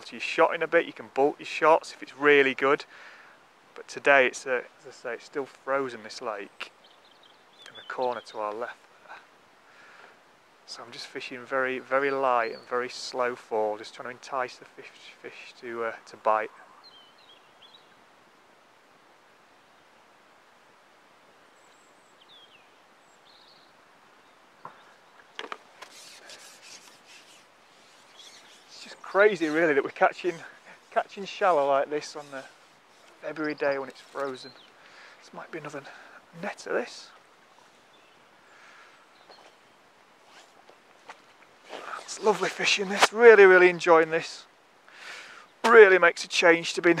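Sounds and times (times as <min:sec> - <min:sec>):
faint bird chirps: 0:06.4 - 0:09.3, 0:16.5 - 0:18.0, 0:21.4 - 0:25.3, 0:26.0 - 0:29.6
rustling: 0:24.6 - 0:43.7.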